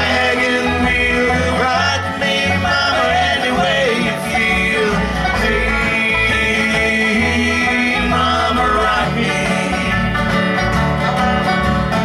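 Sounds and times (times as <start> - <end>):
banjo rolling: 0.0 - 12.0
bass: 0.0 - 12.0
sliding lead melody: 0.0 - 12.0
strummed acoustic guitar: 0.0 - 12.0.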